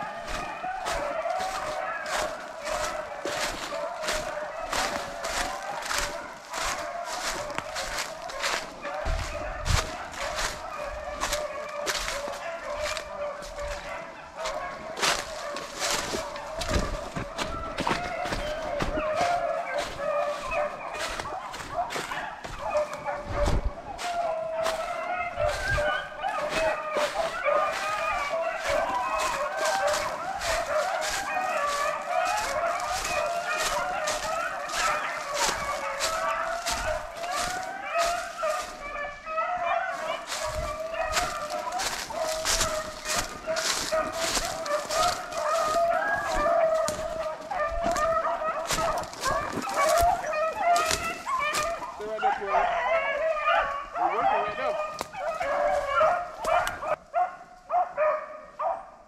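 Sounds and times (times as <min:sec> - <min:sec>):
dry leaves crunching underfoot: 0:00.0 - 0:52.4, 0:54.3 - 0:57.0
hounds baying: 0:00.0 - 0:59.0.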